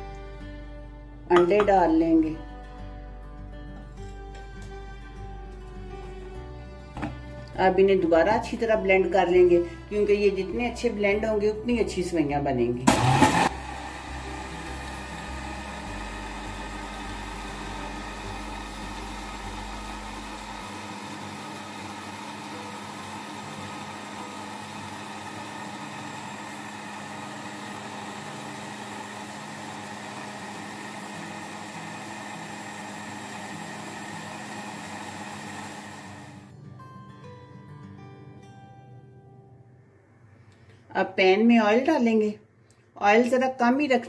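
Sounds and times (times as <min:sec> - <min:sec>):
electric blender running: 0:12.8 - 0:36.5.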